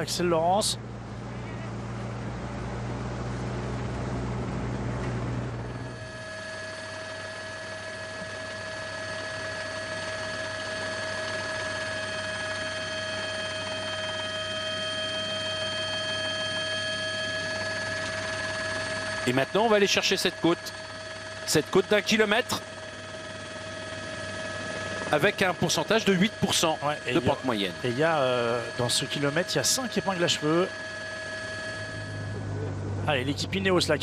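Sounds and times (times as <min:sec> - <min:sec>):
helicopter whine: 0:00.0 - 0:34.0
motorbike engine hum and rushing: 0:00.8 - 0:06.0.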